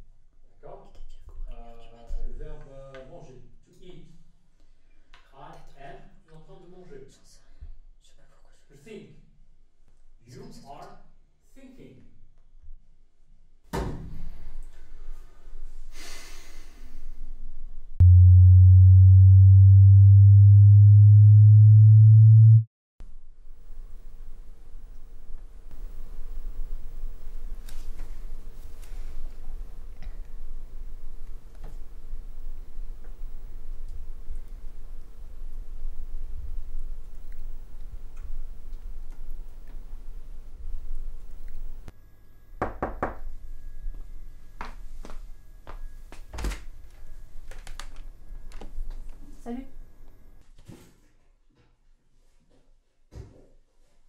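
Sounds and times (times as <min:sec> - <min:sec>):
deep electronic tone: 0:18.0 - 0:22.7
knocks on a door: 0:42.6 - 0:43.3.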